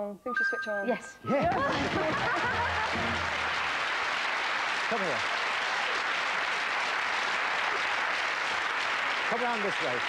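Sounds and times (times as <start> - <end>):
audience applauding: 1.4 - 10.0.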